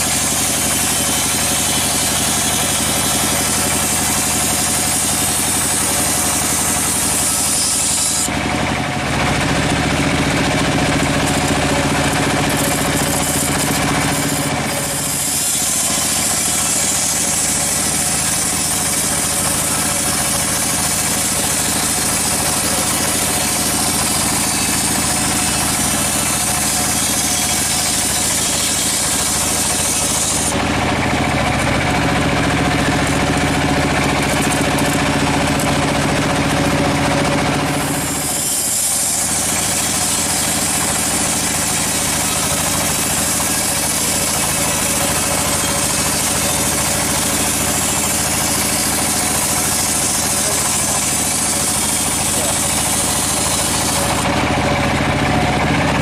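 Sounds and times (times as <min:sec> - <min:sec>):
saw blade hissing in wood: 0:00.0 - 0:08.3, 0:11.2 - 0:30.6, 0:34.2 - 0:54.2
band sawmill machine hum: 0:00.0 - 0:56.0.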